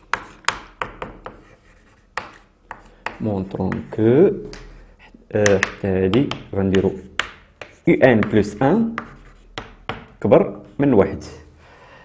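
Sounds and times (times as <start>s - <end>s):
chalk scratching on blackboard: 0.0s - 4.1s, 6.7s - 11.1s
chalk tapping on blackboard: 0.0s - 4.7s, 5.4s - 10.8s.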